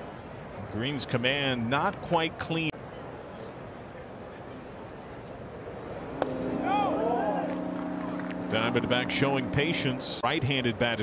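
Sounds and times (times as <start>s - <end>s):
ballpark crowd hum: 0.0s - 11.0s.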